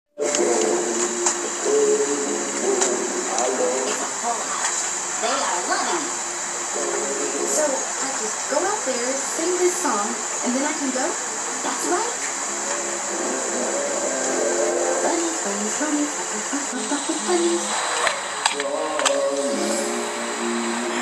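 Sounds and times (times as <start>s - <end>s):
cartoon music on television: 0.2s - 4.6s, 12.4s - 16.3s, 17.4s - 21.0s
steady high hiss: 0.2s - 21.0s.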